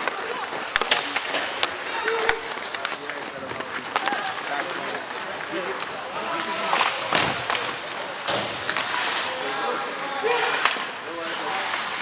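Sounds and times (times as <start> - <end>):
skates scraping on ice: 0.0 - 12.0.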